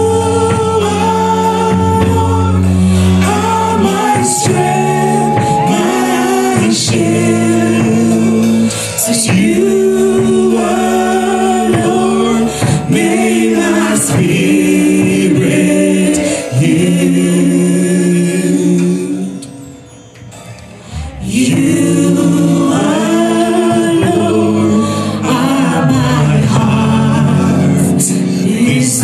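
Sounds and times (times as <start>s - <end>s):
man and woman singing duet: 0.0s - 19.5s, 20.9s - 29.0s.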